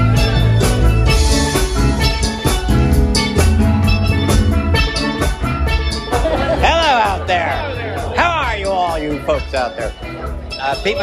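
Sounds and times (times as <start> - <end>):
electric bass guitar: 0.0 - 11.0
steady beat: 0.0 - 11.0.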